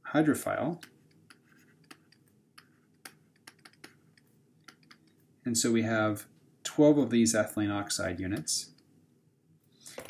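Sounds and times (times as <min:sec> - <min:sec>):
stylus tapping on pen tablet: 0:00.8 - 0:05.1.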